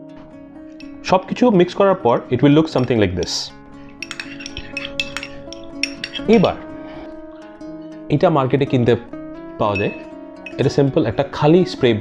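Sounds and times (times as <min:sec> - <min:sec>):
soft acoustic guitar music: 0:00.0 - 0:12.0
spoon clinking in glass bowl: 0:02.7 - 0:06.6, 0:09.7 - 0:10.8.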